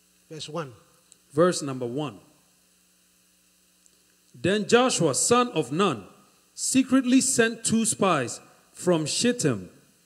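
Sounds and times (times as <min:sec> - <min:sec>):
faint electrical hum: 0:00.0 - 0:10.0
person speaking: 0:00.3 - 0:02.3.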